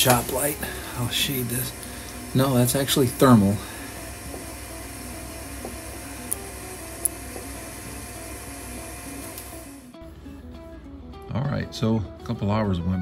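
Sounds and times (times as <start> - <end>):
steady hiss: 0.0 - 10.0
soft background music: 0.0 - 13.0.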